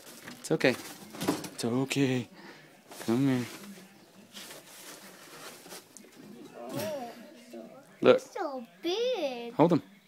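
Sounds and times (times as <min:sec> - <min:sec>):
rustling in wire cage: 0:02.9 - 0:07.0.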